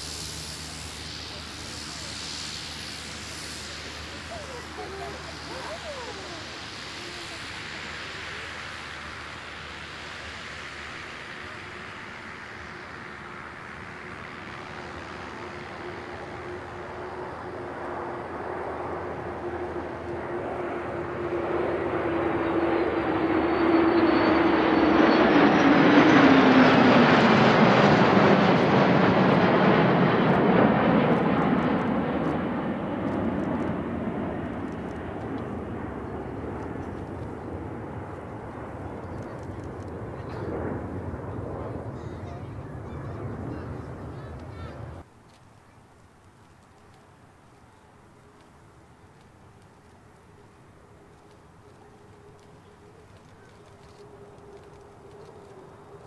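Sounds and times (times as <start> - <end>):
jet engines flying past: 0.0 - 56.0.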